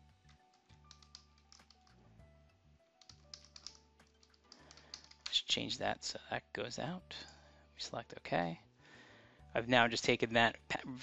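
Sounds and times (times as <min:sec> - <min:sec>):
faint keyboard typing: 0:00.2 - 0:02.1, 0:02.9 - 0:05.4.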